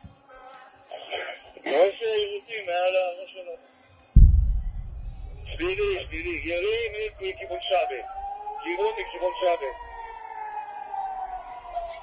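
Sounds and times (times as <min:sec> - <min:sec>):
man speaking: 0:05.5 - 0:08.0
air-raid siren wailing: 0:07.1 - 0:12.0.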